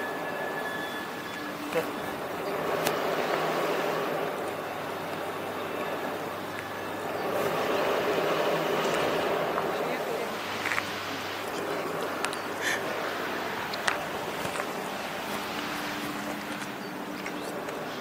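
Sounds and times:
tyres on pavement: 0:00.0 - 0:18.0
car engine accelerating: 0:01.4 - 0:18.0.

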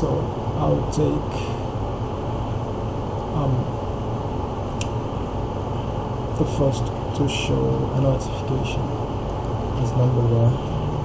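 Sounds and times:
low fan hum: 0:00.0 - 0:11.0.

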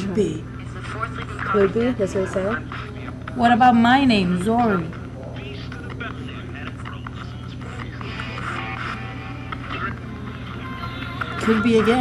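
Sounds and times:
fragments of radio voices: 0:00.0 - 0:12.0
steady low hum: 0:00.0 - 0:12.0
radio static: 0:00.5 - 0:10.8.

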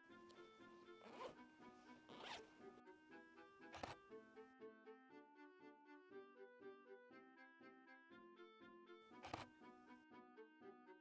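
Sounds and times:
backpack zipper pulled open: 0:01.0 - 0:01.4, 0:02.1 - 0:02.4, 0:03.7 - 0:04.0.

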